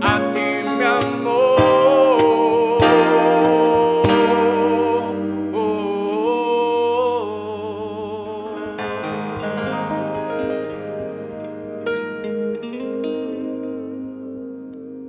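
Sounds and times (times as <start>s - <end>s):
man singing held notes: 0.0s - 9.1s
electric guitar: 0.0s - 15.0s
keyboard: 0.0s - 15.0s.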